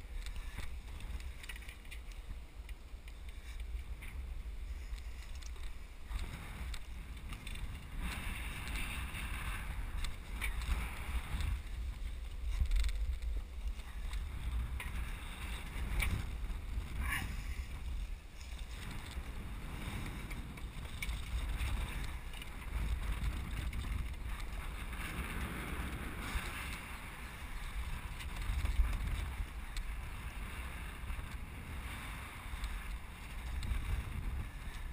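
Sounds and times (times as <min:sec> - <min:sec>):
wind buffeting microphone: 0:00.0 - 0:34.9.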